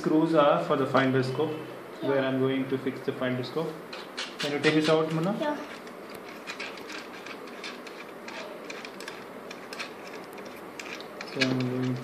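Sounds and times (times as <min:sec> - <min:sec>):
small parts knocking: 0:03.9 - 0:12.0
fingers undoing screws: 0:05.6 - 0:12.0.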